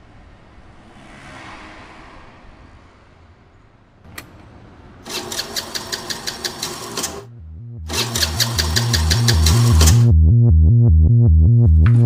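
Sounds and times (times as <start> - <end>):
scooter starter cranking engine: 5.1 - 7.3, 7.9 - 10.1
pulsing electronic bass beat: 7.3 - 12.0.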